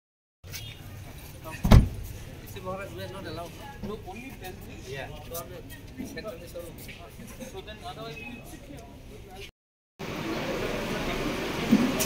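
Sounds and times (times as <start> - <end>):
car door shutting with thump: 1.6 - 2.0.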